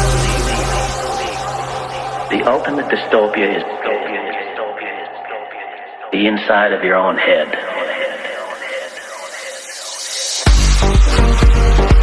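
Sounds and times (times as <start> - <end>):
voice sample like radio: 0.0 - 11.0
melodic techno music: 0.0 - 12.0.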